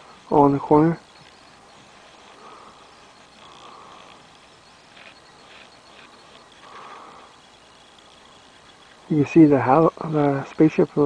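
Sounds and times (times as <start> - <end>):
low steady hiss: 0.0 - 11.0
soft indistinct sounds: 0.0 - 11.0.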